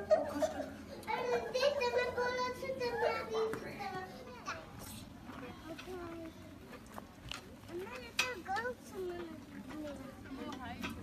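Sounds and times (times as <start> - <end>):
children's voices chattering and calling: 0.0 - 11.0.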